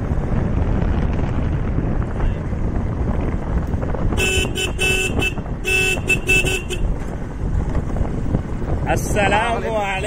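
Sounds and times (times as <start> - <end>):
motorcycle engine rumble: 0.0 - 10.0
wind rush on microphone: 0.0 - 10.0
motorcycle horn short toots: 4.1 - 7.0.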